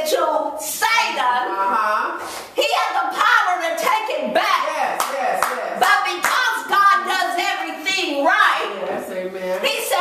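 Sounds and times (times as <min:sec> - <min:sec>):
sharp hand claps: 0:05.0 - 0:06.5.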